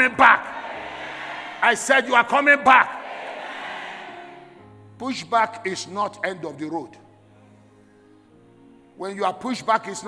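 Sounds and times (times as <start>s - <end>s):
speech echo in hall: 0.0s - 7.4s, 9.0s - 10.0s
soft background music: 0.0s - 10.0s.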